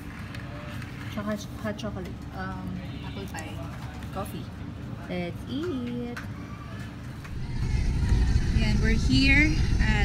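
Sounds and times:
loud low rumble: 7.2s - 10.0s.

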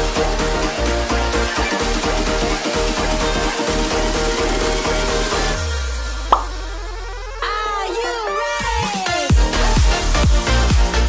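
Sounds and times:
electronic background music: 0.0s - 11.0s
short plop sound effect: 6.3s - 6.6s.

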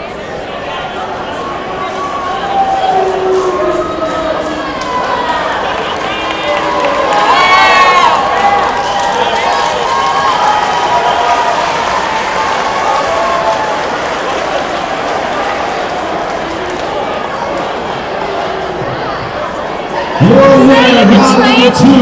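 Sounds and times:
crowd cheering: 0.0s - 22.0s.

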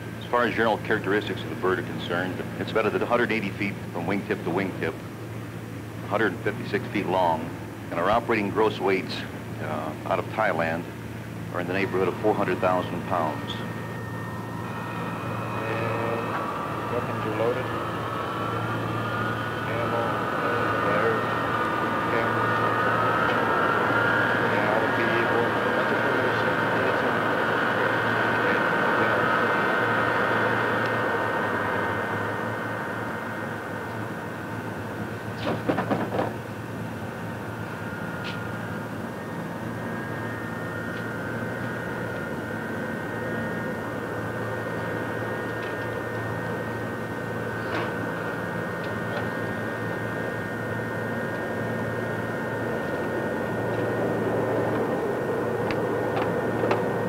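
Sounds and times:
machinery whine and hum: 0.0s - 57.0s.

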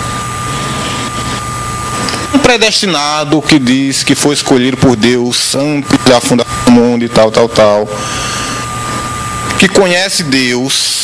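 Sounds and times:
radio recording hiss: 0.0s - 11.0s.

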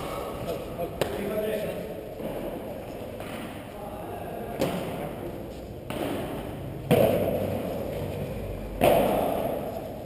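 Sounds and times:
padel ball hits echoing: 5.9s - 7.8s, 8.8s - 9.7s.

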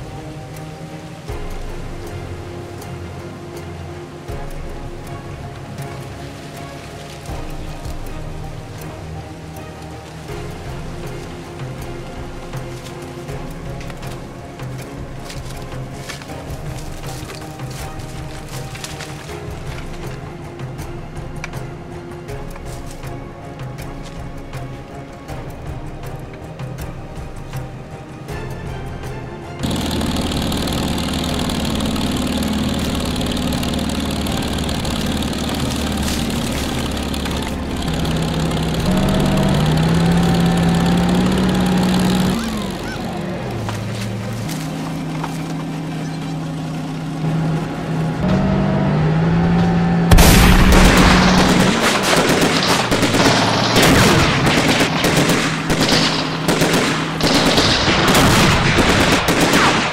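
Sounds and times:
dramatic score with low notes: 0.0s - 59.9s
automatic rifle gunfire: 29.6s - 33.6s, 50.1s - 59.9s.

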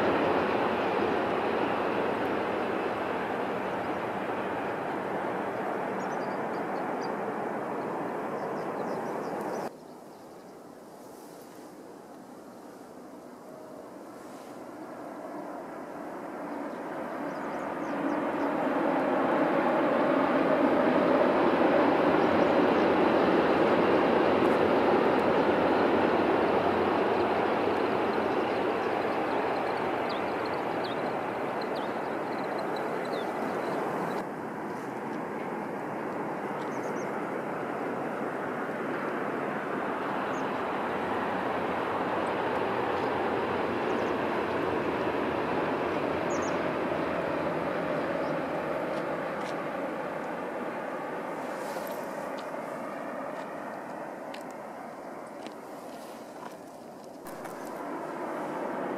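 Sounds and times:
train running on viaduct: 0.0s - 9.7s, 14.6s - 58.9s.

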